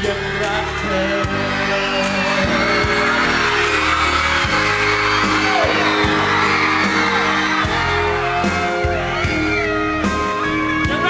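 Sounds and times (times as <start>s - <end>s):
audience cheering and whooping: 0.0s - 11.0s
live pop band playing: 0.0s - 11.0s.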